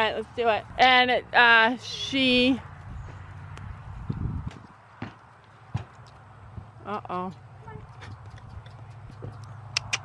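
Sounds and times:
hooves knocking on a ramp: 4.4s - 6.7s.

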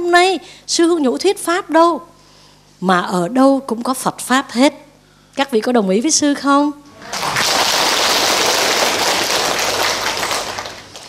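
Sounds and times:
large audience applauding: 7.0s - 11.0s.

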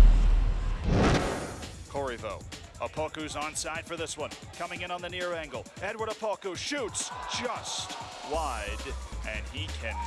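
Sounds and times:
male sports commentator: 1.9s - 10.0s.

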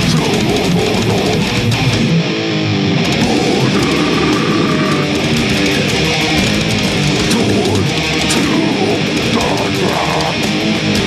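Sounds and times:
death metal band playing live: 0.0s - 11.0s
guitar run of stepped notes: 0.0s - 11.0s.

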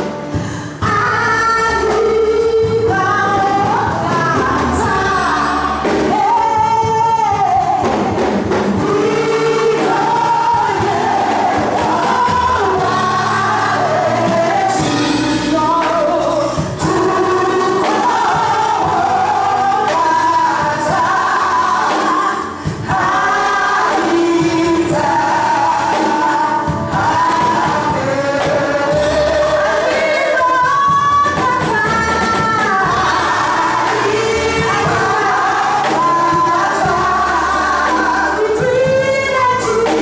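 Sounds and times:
drums: 0.0s - 40.0s
keyboard: 0.0s - 40.0s
voices singing together: 0.8s - 40.0s.

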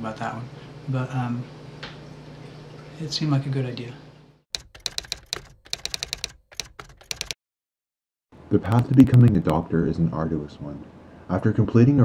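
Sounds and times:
keyboard typing clicks: 4.6s - 7.4s, 8.7s - 9.6s.

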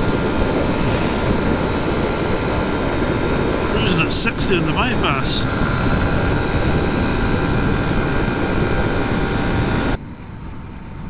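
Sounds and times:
wind on microphone: 0.0s - 3.8s
motorcycle engine cruising: 0.0s - 11.0s.

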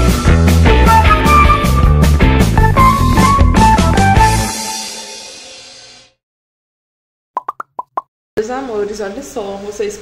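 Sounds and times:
cartoon-like pitched pops: 7.4s - 8.1s.

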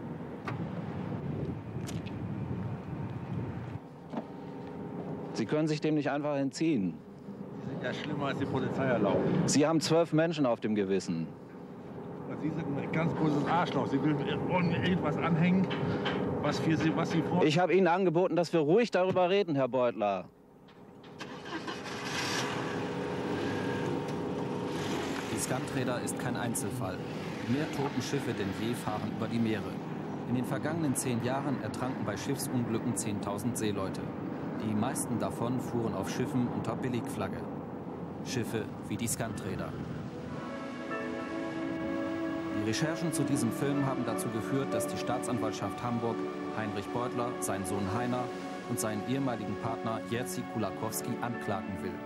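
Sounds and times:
low outdoor rumble: 0.0s - 18.1s, 20.4s - 40.9s.

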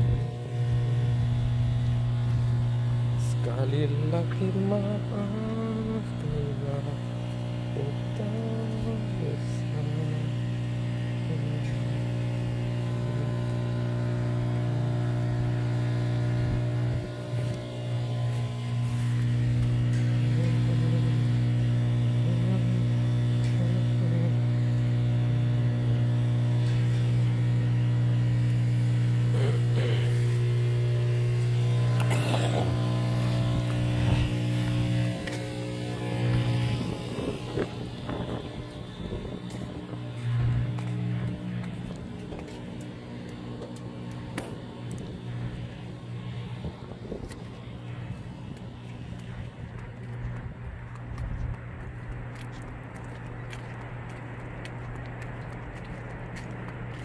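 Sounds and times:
steady low hum: 0.0s - 57.0s.

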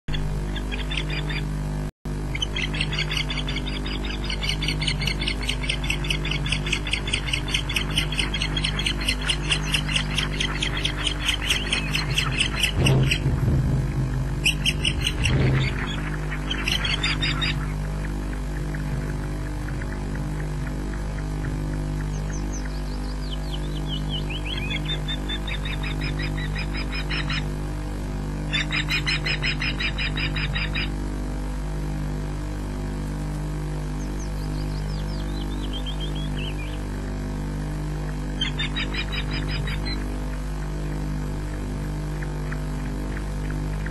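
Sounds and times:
steady low hum: 0.1s - 43.9s
bird high whistled chirps: 14.4s - 17.6s.

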